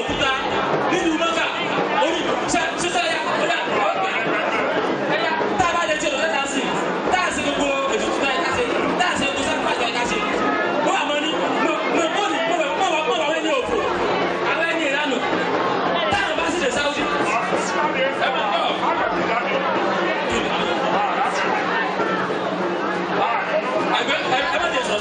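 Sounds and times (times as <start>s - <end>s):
man speaking through microphone: 0.0s - 22.0s, 23.1s - 25.0s
dense crowd chatter: 0.0s - 25.0s.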